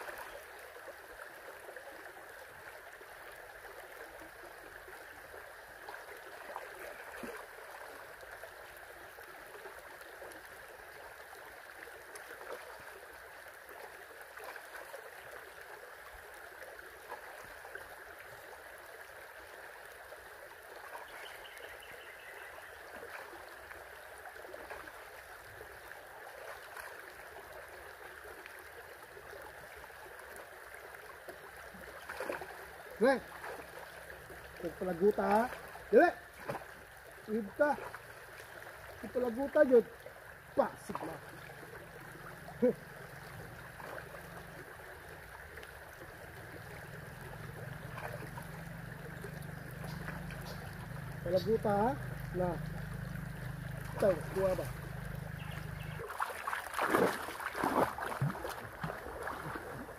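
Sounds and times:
creek water running over rocks: 0.0s - 59.9s
small water splashes: 0.0s - 59.9s.

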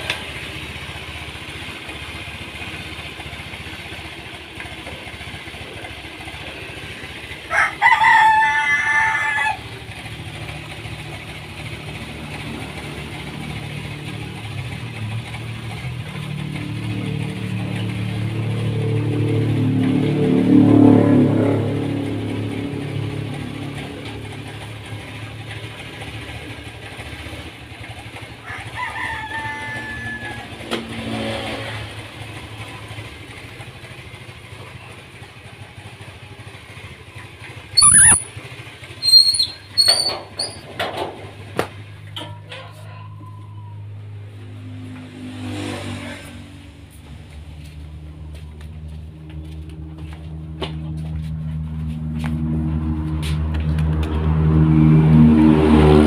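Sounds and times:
scooter engine idling: 0.0s - 20.0s, 21.6s - 30.9s, 31.9s - 44.8s, 46.4s - 52.4s
rooster crowing: 7.5s - 9.8s, 28.4s - 30.7s, 42.2s - 44.1s.

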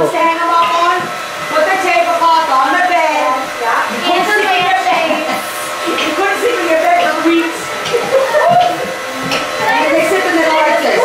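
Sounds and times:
indistinct conversation: 0.0s - 11.0s.

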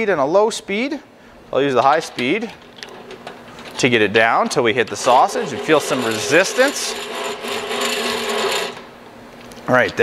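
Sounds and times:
hand-cranked sausage stuffer gears: 4.9s - 8.8s.

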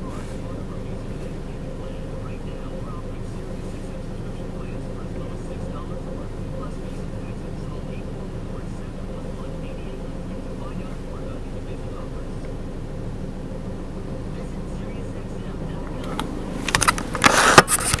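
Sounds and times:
car engine idling: 0.0s - 18.0s
recording device handling noise: 15.7s - 18.0s.

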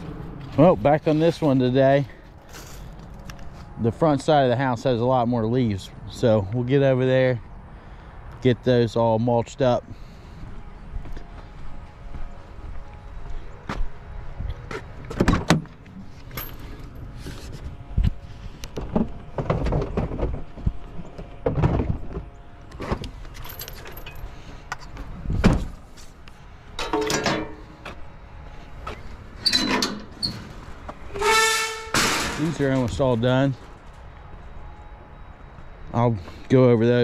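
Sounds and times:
metal gate knocks and clanks: 26.8s - 27.6s, 29.4s - 30.4s
short squeaks: 28.9s - 32.0s.

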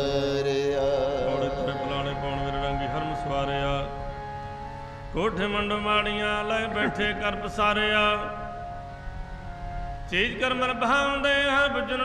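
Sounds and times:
man singing: 0.0s - 4.0s, 5.1s - 8.6s, 10.1s - 12.0s
harmonium chord: 0.0s - 12.0s.

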